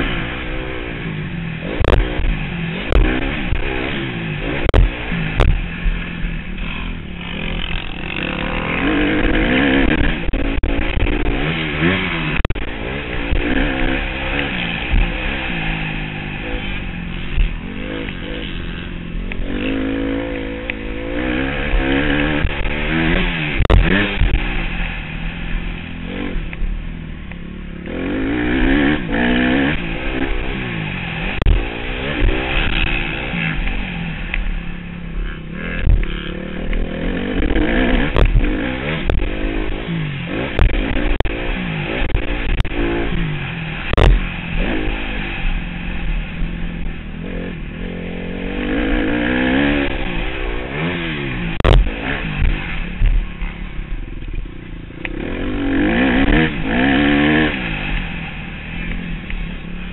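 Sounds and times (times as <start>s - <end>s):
motocross bike engine revving: 0.0s - 59.9s
bike knocking on rough track: 22.4s - 24.5s, 43.9s - 44.9s, 51.6s - 53.2s.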